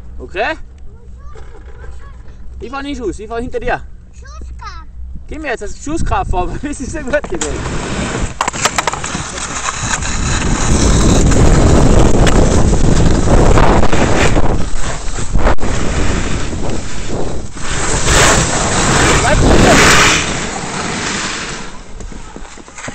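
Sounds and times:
wind buffeting microphone: 5.0 - 22.9
skis scraping over snow: 6.7 - 22.9.

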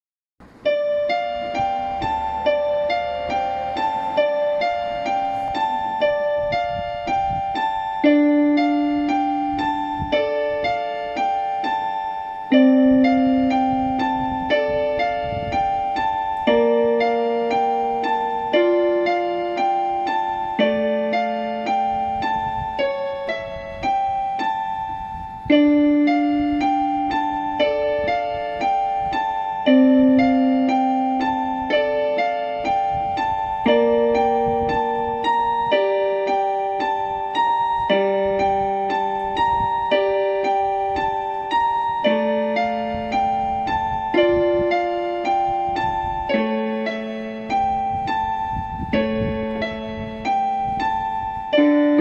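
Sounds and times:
keyboard playing piano melody: 0.4 - 52.0.

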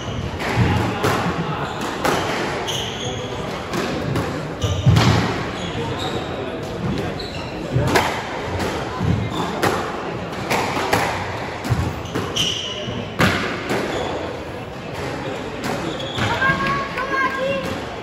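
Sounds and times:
squash ball hits echoing: 0.2 - 5.5, 7.8 - 14.2
shoes squeaking on wooden floor: 5.6 - 7.8, 11.8 - 13.0, 15.8 - 16.7.

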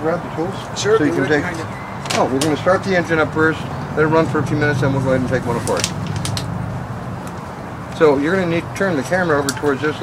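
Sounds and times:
low outdoor hum: 0.2 - 10.0.

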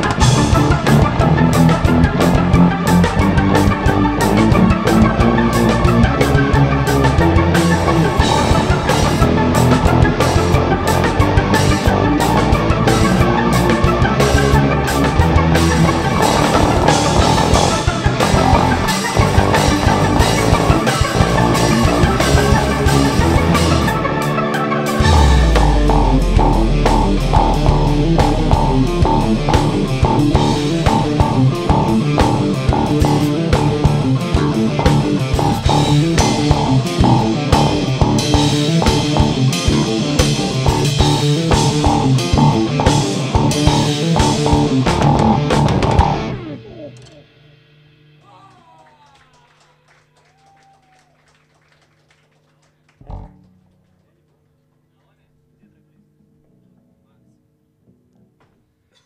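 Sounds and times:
live rock band playing: 0.0 - 47.0
drum hits: 15.2 - 23.9, 25.0 - 46.4.

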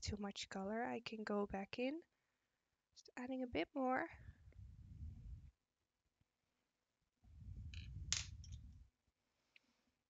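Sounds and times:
pencils handling rumble: 7.6 - 8.7
pencil clattering on desk: 7.8 - 8.6.

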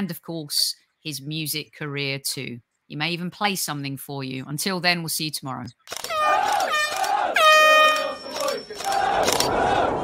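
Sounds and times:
air horn blasts: 6.1 - 8.3
crowd noise: 6.1 - 10.0.

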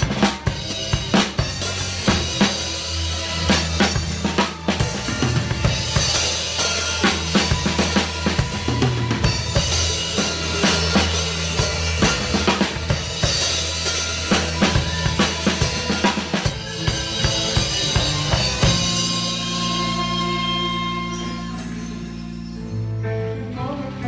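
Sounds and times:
drum kit groove: 0.0 - 22.6
recorded song with bass line: 0.0 - 24.0.

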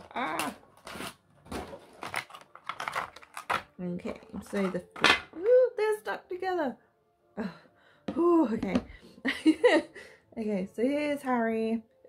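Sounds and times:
packaging clicks and rustles: 0.0 - 5.0.

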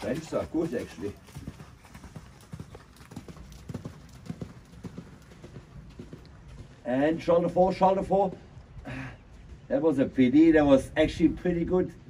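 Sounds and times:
horse hooves cantering on sand: 0.0 - 11.6.

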